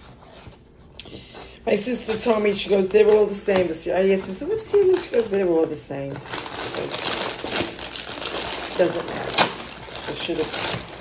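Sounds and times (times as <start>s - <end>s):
plastic bag crinkling: 1.8s - 11.0s.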